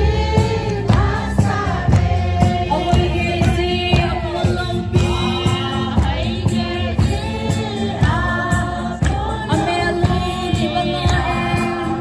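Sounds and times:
group singing: 0.0 - 12.0
steady drum beat: 0.0 - 12.0.

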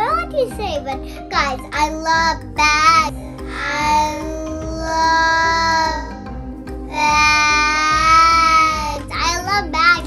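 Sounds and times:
girl singing: 0.0 - 6.2, 6.9 - 10.0.

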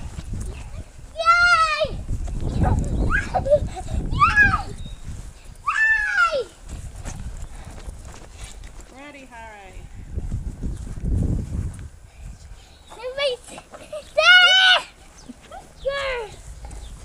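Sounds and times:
children squealing and shrieking: 2.9 - 4.8, 5.6 - 6.6, 13.9 - 16.4.

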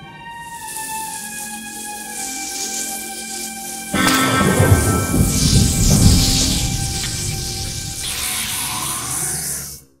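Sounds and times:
soft background music: 0.0 - 8.4
rain hiss: 0.5 - 9.8.

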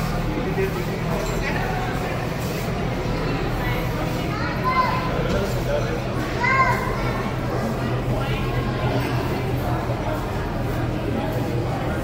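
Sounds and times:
children's voices in hall: 0.0 - 12.0.

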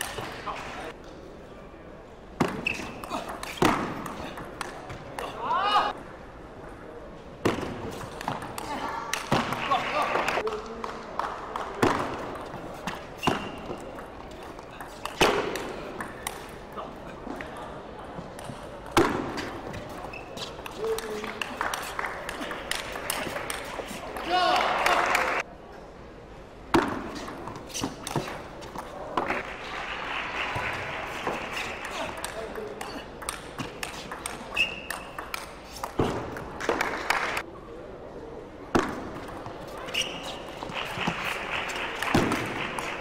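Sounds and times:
indoor crowd murmur: 0.0 - 43.0
brief high squeak: 2.6 - 3.0, 39.9 - 40.4.

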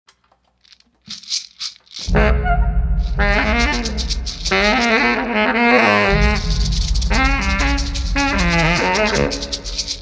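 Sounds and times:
shaker rattling: 0.6 - 2.2, 2.9 - 5.2, 6.1 - 10.0.

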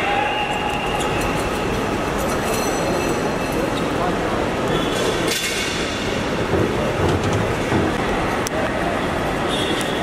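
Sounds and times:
rumbling airport forecourt noise: 0.0 - 10.0.

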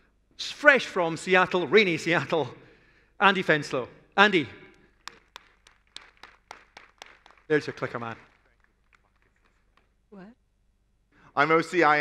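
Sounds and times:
faint scattered applause: 4.7 - 10.0.

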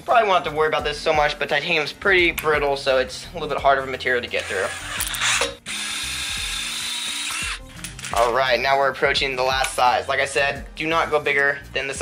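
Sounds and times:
drill cutting metal: 4.3 - 7.7.

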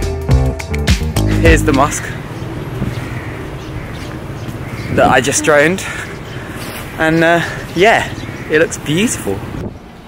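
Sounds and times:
low outdoor rumble: 1.3 - 8.6.

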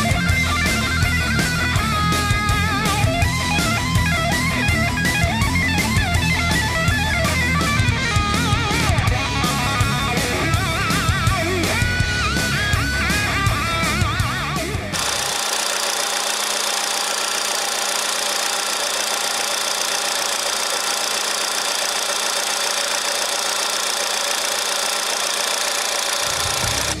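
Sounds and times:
guitar music: 0.0 - 15.0
car engine idling: 14.9 - 27.0.

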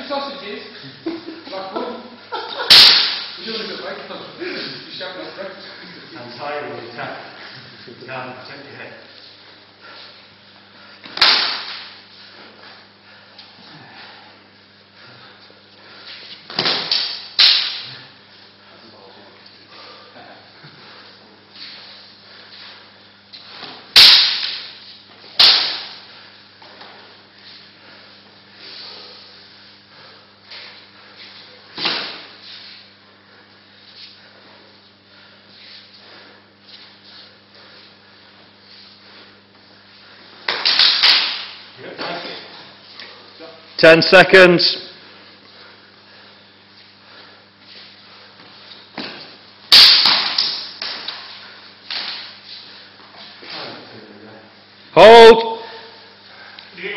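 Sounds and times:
sharp loud cracks: 2.6 - 3.5, 11.1 - 12.0, 16.6 - 17.9, 23.9 - 24.8, 25.4 - 26.0, 40.5 - 41.6, 49.7 - 51.1
swords clacking: 2.7 - 3.4, 16.6 - 17.9, 24.0 - 24.7, 25.4 - 25.9, 40.5 - 41.5.

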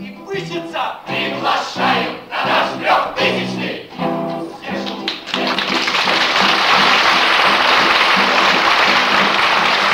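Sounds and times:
audience applauding: 4.8 - 9.9.

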